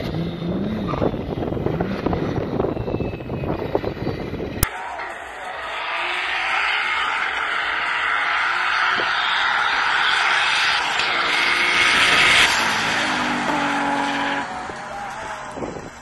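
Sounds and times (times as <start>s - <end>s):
car engine at high revs passing: 0.0s - 4.3s, 5.5s - 16.0s.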